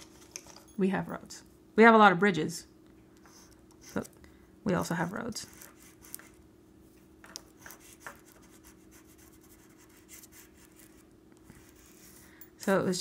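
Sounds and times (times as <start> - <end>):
crayon scratching on paper: 4.9 - 6.4, 7.6 - 12.2.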